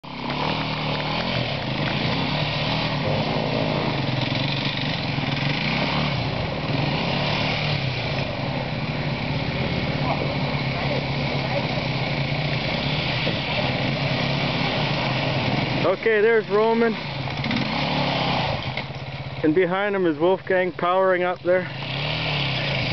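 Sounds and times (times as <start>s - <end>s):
motorcycle engines revving uphill: 0.0s - 22.9s.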